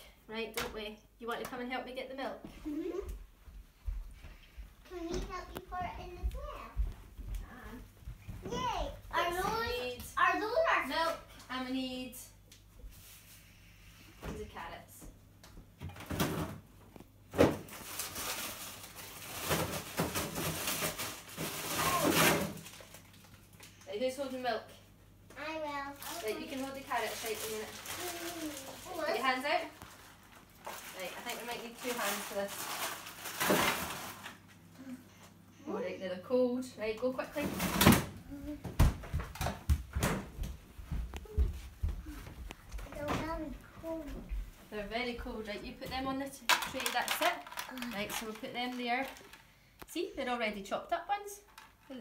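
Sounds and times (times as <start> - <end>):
footsteps on floor: 2.4 - 10.2, 38.4 - 44.7
packets rustling and scraping: 17.5 - 23.1, 26.0 - 34.5.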